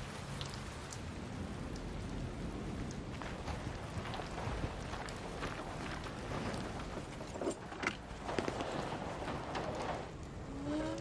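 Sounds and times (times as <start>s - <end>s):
steady rain: 0.0s - 11.0s
water dripping off roof: 0.0s - 11.0s.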